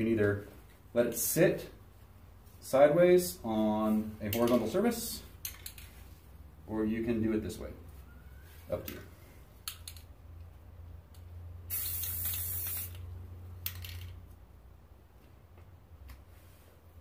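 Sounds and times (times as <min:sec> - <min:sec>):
aerosol spray can hissing: 0:11.7 - 0:13.1.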